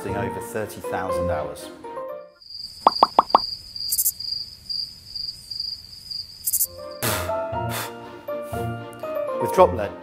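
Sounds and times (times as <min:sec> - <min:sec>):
crickets chirping: 0:02.4 - 0:07.0
pop sound effects: 0:02.9 - 0:03.4.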